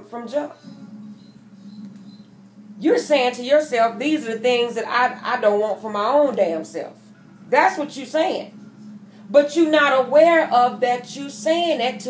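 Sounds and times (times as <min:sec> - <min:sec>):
woman speaking: 0:00.0 - 0:00.7, 0:02.8 - 0:08.6, 0:09.3 - 0:12.0
faint high tones: 0:00.0 - 0:03.3
faint low hum: 0:00.0 - 0:12.0.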